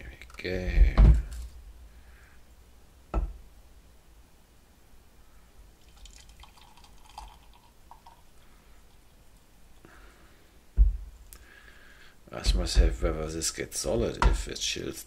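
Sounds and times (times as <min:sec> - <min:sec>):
syrup trickling and dripping: 0:05.8 - 0:09.5.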